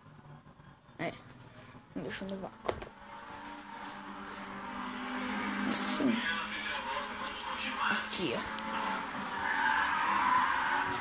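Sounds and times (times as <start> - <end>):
television music: 0.0 - 11.0
voices from television: 0.2 - 11.0.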